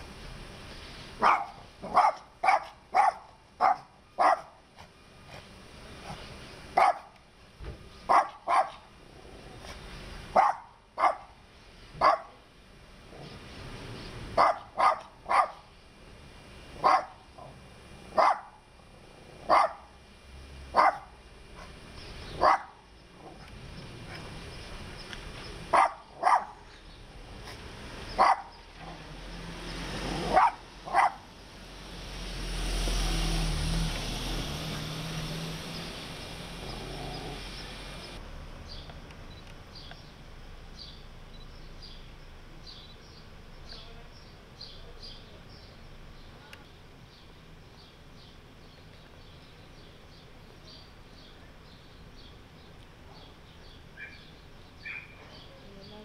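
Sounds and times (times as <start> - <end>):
dog barking: 1.2 - 4.6, 6.8 - 7.1, 8.1 - 8.8, 10.3 - 11.4, 12.0 - 12.4, 14.4 - 15.7, 16.8 - 18.6, 19.4 - 19.9, 20.7 - 21.7, 22.4 - 23.4, 25.7 - 26.6, 28.2 - 29.0, 30.2 - 31.3, 54.8 - 55.2.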